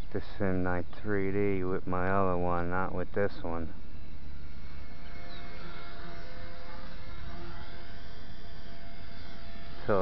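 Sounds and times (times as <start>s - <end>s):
toy helicopter rotors whirring: 3.2s - 10.0s.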